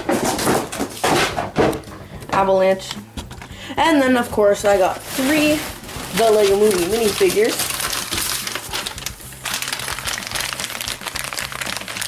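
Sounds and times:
packaging rustling and scraping: 4.6 - 12.0.

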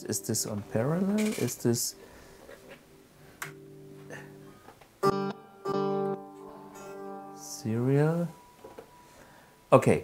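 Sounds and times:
electric guitar notes and chords: 2.9 - 9.2.

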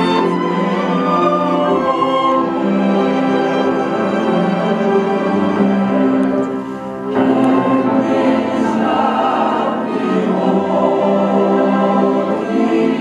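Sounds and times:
string ensemble playing slow piece: 0.0 - 13.0.

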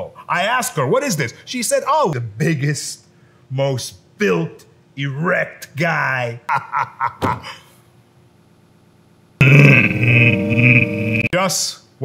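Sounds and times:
man's drawn-out wordless vocal: 9.4 - 11.4.

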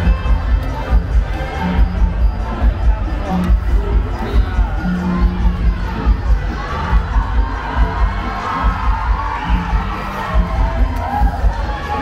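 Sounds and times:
crowd hubbub: 0.0 - 12.0
music with steady bass beat: 0.0 - 12.0.

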